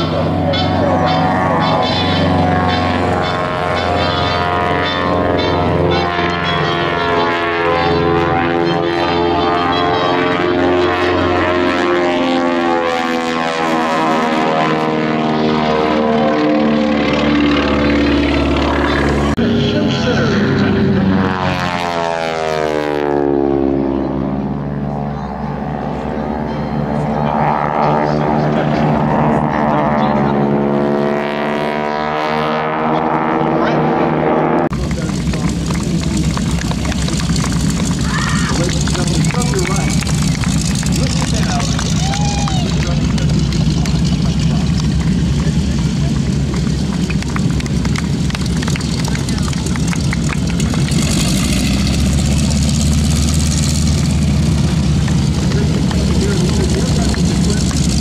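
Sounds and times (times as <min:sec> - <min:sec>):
propeller airplane engines droning: 0:00.0 - 0:58.0.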